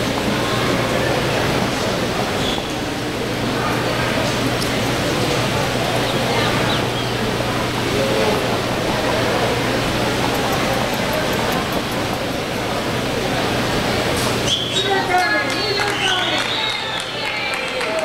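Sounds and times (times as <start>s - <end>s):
constant low hum: 0.0s - 14.5s
indistinct background voices: 0.0s - 18.0s.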